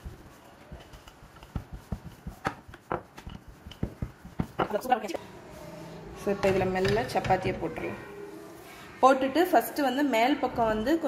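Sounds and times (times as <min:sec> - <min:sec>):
rolling pin rolling dough on board: 0:00.0 - 0:05.1
rolling pin knocking on board: 0:00.8 - 0:04.8.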